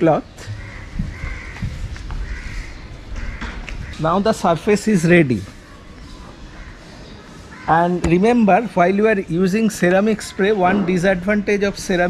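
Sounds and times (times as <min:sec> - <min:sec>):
crow cawing: 0:00.4 - 0:04.2, 0:06.5 - 0:08.0.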